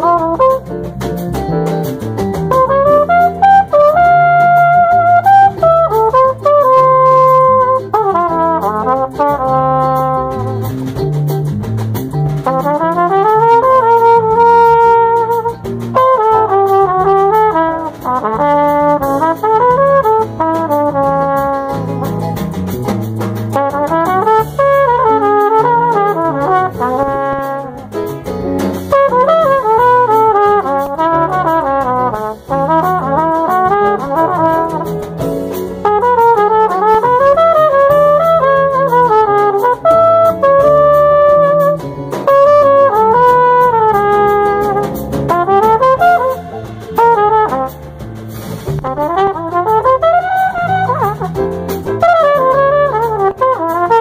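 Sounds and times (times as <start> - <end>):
brass horn melody: 0.0 - 11.1, 12.3 - 54.0
stepping bass line: 0.0 - 54.0.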